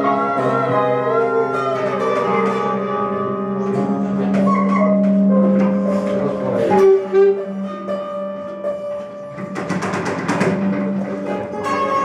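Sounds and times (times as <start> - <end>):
rattling clicking percussion: 9.3 - 12.0.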